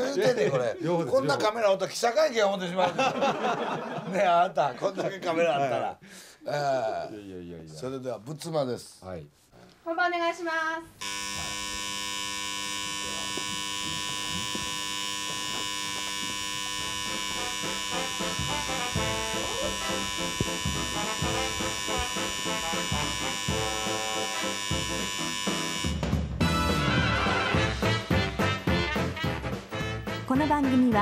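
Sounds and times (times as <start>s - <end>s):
dense electronic buzz: 11.0s - 28.3s.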